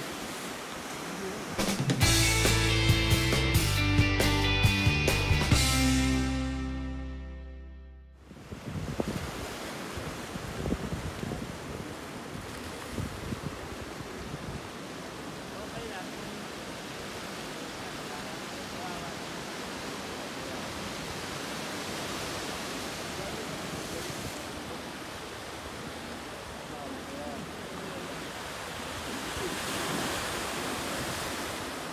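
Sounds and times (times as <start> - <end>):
surf breaking over rocks: 0.0 - 2.2, 8.4 - 31.9
wind buffeting microphone: 8.2 - 14.7.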